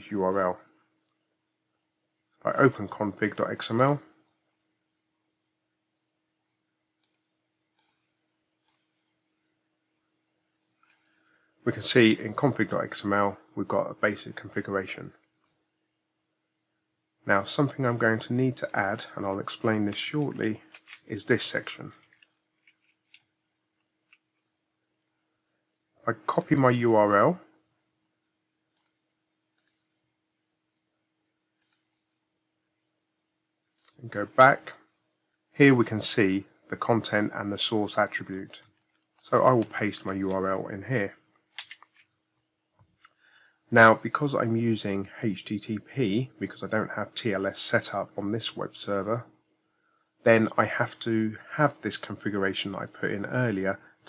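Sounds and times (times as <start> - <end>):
computer mouse clicks: 7.0 - 8.9, 28.7 - 29.9, 31.6 - 32.0, 33.7 - 34.0, 41.6 - 42.1.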